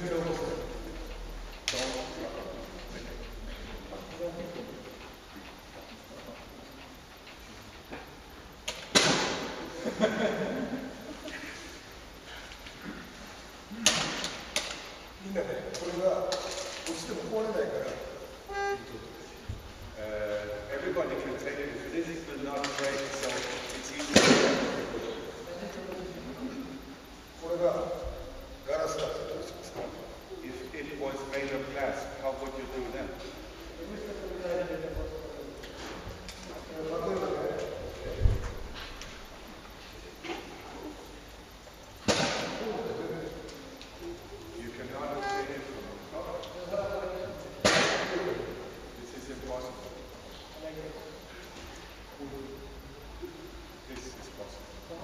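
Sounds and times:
low murmur of crowd: 0.0 - 55.0
voices talking in a hall: 0.0 - 55.0
sharp smack ringing in hall: 8.9 - 9.5, 24.1 - 24.8, 42.0 - 42.6, 47.6 - 48.2
short held tone: 18.5 - 19.3, 45.2 - 45.8.

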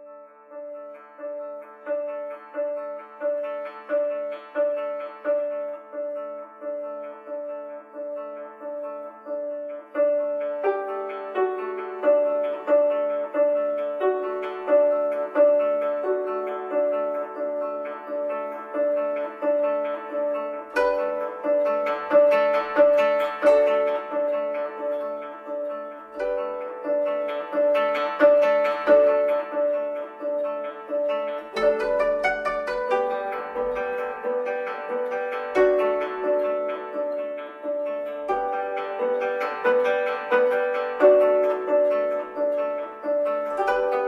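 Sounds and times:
plucked zither notes: 0.0 - 44.0.

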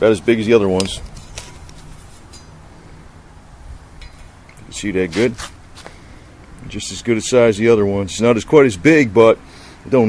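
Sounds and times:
garden tools handling noise: 0.0 - 2.6, 3.9 - 6.7.

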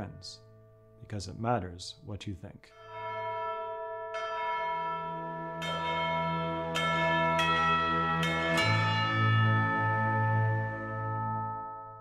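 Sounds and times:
chiming bells: 0.0 - 2.1, 2.7 - 12.0.

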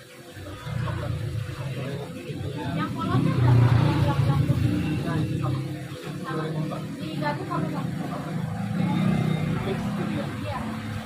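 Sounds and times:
motorcycle passing by: 0.4 - 11.0.

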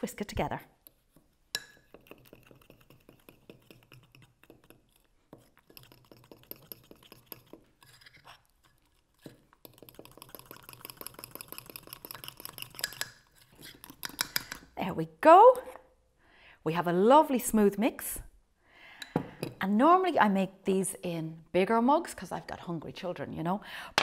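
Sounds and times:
whisk clinking and scraping in jug: 0.8 - 14.7.

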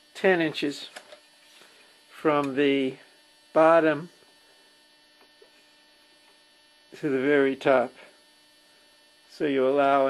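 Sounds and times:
faint electrical mains hum: 0.0 - 10.0.

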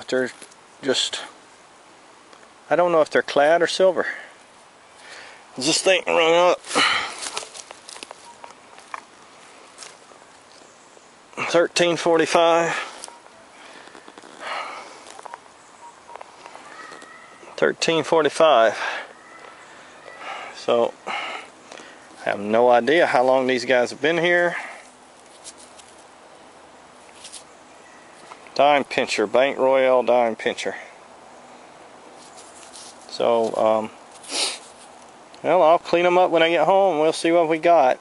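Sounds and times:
faint hiss: 0.0 - 38.0
rustling in dry leaves: 4.1 - 28.6, 31.4 - 36.1.

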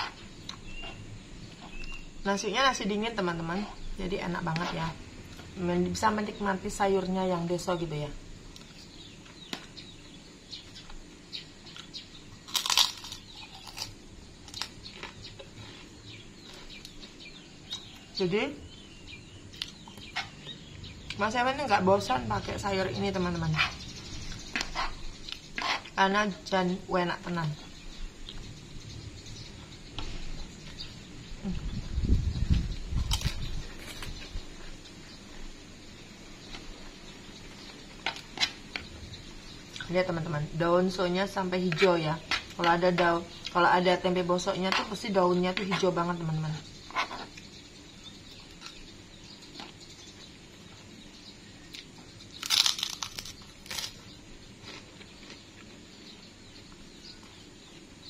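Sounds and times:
crackers crunching: 11.7 - 17.0, 33.0 - 34.3, 51.7 - 55.9
person chewing: 11.7 - 17.0, 51.7 - 54.0, 54.6 - 55.8.

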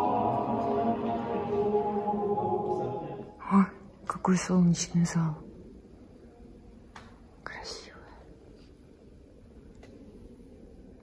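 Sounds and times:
person whispering: 7.4 - 8.6.

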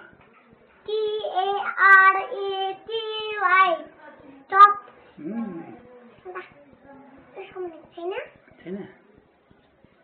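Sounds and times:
child singing wordlessly: 0.9 - 4.8.

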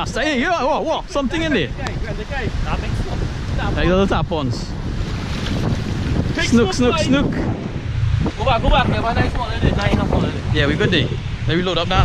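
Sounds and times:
steady low rumble: 0.0 - 12.0
wind buffeting microphone: 0.0 - 12.0.

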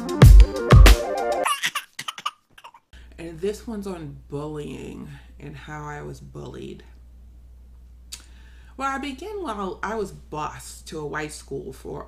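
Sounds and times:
electronic music: 0.0 - 1.4
baby laughing: 1.4 - 2.8.

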